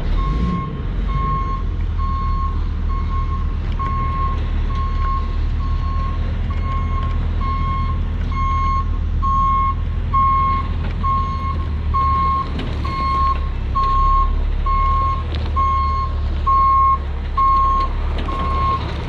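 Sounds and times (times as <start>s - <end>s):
truck backup alarm beeping: 0.0s - 19.0s
truck engine running low: 0.0s - 19.0s.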